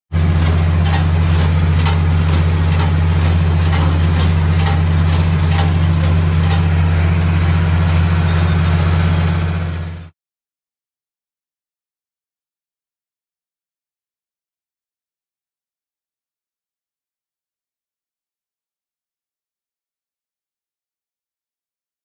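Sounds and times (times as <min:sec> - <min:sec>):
tractor engine running: 0:00.1 - 0:10.1
baler clicking: 0:00.2 - 0:06.8.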